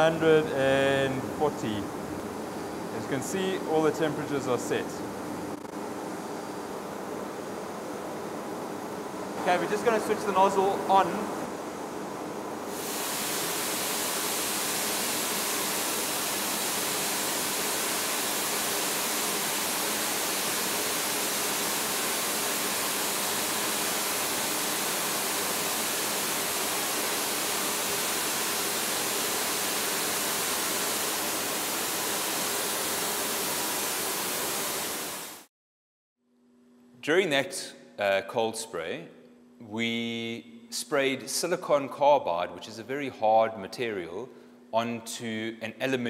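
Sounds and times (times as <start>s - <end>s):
spray gun loud hiss: 12.6s - 35.5s.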